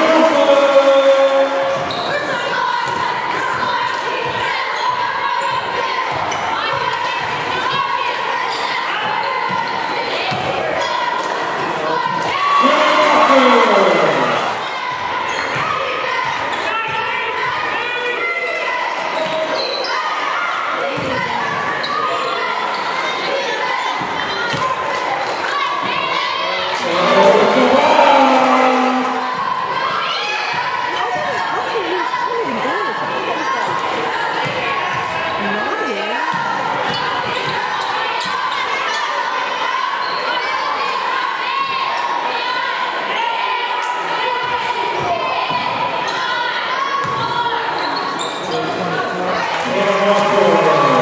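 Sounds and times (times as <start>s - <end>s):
crowd murmuring: 0.0s - 2.0s, 11.8s - 14.8s, 26.6s - 29.9s, 31.0s - 34.3s, 48.5s - 51.0s
people calling out in gym: 0.0s - 51.0s.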